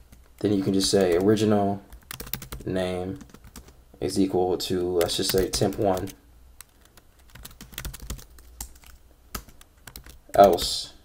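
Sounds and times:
computer keyboard typing: 0:00.0 - 0:02.6, 0:03.2 - 0:03.8, 0:04.8 - 0:10.8.

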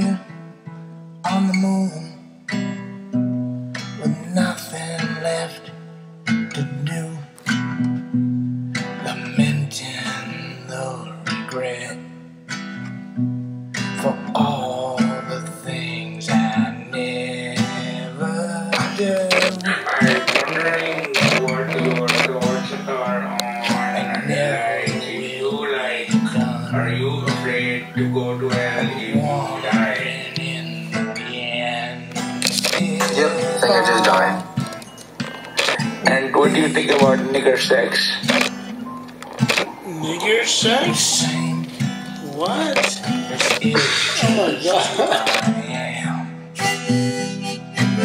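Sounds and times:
acoustic guitar music: 0:00.0 - 0:48.0.

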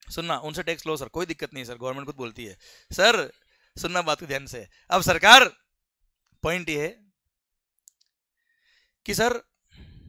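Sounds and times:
faint breath: 0:02.6 - 0:03.8, 0:08.4 - 0:09.0, 0:09.7 - 0:10.0.

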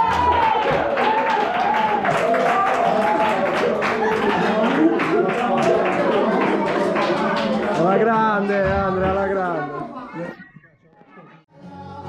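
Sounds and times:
audience clapping: 0:00.0 - 0:08.7.

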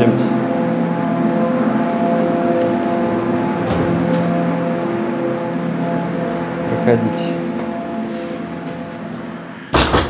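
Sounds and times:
background music sustained tones: 0:00.0 - 0:10.0.

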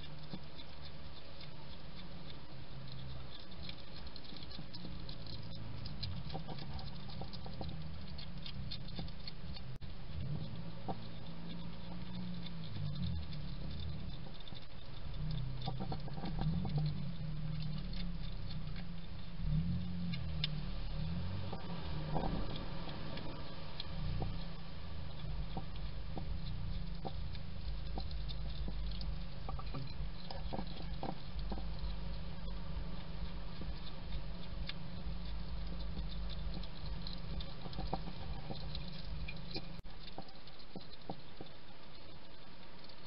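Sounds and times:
hedgehog chewing and crunching: 0:00.0 - 0:43.0.

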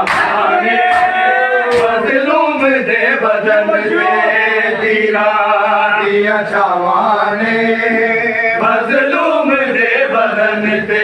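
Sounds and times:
men chanting in unison: 0:00.0 - 0:11.0.

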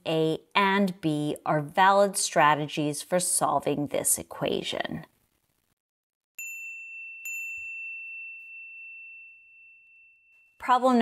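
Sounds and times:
bell-like dings: 0:06.4 - 0:10.8.

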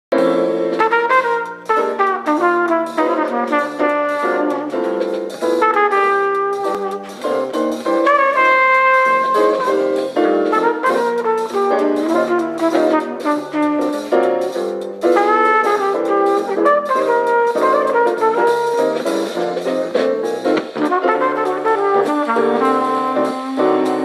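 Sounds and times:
trumpet playing jazz melody: 0:00.1 - 0:24.0
walking bass line: 0:00.6 - 0:24.0.

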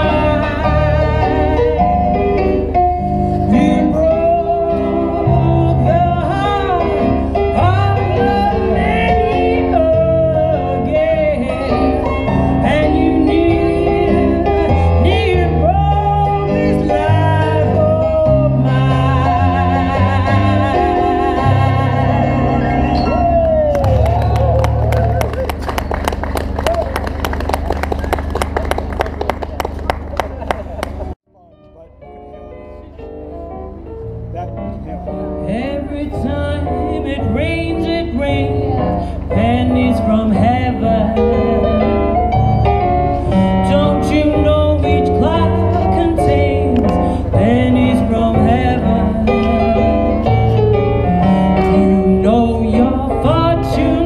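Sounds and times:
live blues song: 0:00.0 - 0:26.2, 0:35.2 - 0:54.0
crowd voices: 0:22.2 - 0:31.2
small crowd clapping: 0:23.5 - 0:31.2
keyboard chord: 0:31.0 - 0:54.0.

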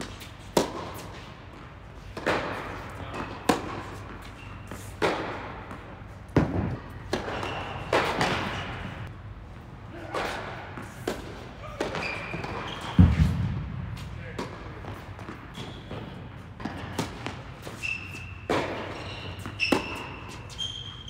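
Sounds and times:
tennis balls bouncing on hard court: 0:00.0 - 0:09.1, 0:10.1 - 0:21.0
tennis balls struck by rackets: 0:00.0 - 0:09.1, 0:10.0 - 0:17.8, 0:18.5 - 0:20.5.

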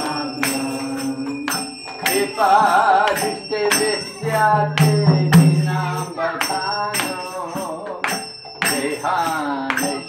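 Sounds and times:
devotional singing: 0:00.0 - 0:10.0
small metal hand cymbals: 0:00.0 - 0:10.0.

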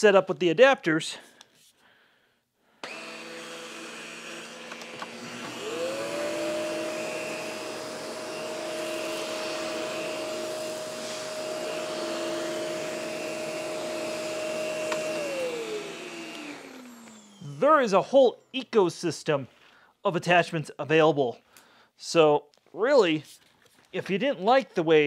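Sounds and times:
power nozzle whine: 0:02.8 - 0:17.8
vacuum cleaner hum: 0:02.8 - 0:17.9.

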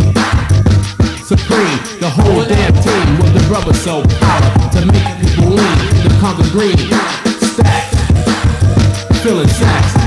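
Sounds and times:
man rapping over a beat: 0:01.2 - 0:08.2, 0:09.1 - 0:10.0
heavy bass line: 0:02.0 - 0:06.8.

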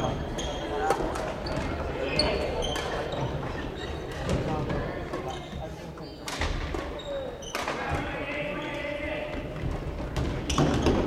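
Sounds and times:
sneaker squeaks on wooden floor: 0:00.0 - 0:07.9, 0:10.2 - 0:11.0.

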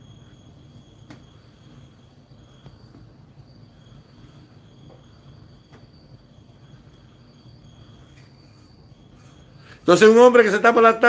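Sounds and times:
background hiss: 0:00.0 - 0:11.0
high-pitched insect chirring: 0:00.0 - 0:11.0
man's voice: 0:09.9 - 0:11.0.

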